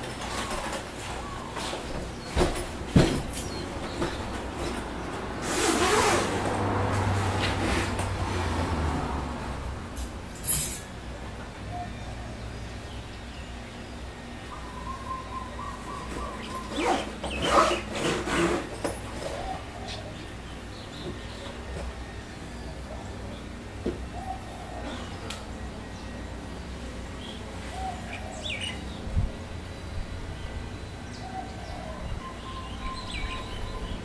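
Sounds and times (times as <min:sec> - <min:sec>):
vehicle passing: 0:04.0 - 0:11.2.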